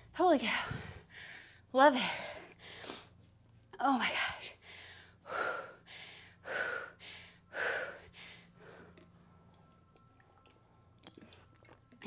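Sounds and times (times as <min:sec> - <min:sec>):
woman panting heavily: 0:00.4 - 0:03.2, 0:04.0 - 0:09.1.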